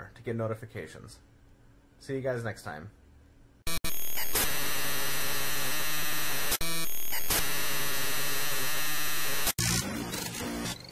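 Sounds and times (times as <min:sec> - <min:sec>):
electronic glitch static hiss: 0:03.7 - 0:09.8.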